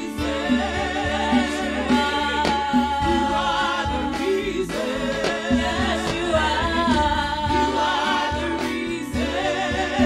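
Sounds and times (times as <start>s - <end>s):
bass: 0.0s - 10.0s
drums: 0.0s - 10.0s
voices singing gospel song: 0.0s - 10.0s.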